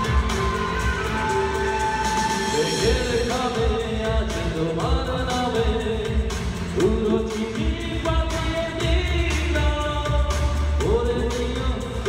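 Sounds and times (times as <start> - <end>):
instrumental backing: 0.0 - 12.0
man singing into microphone: 2.2 - 12.0.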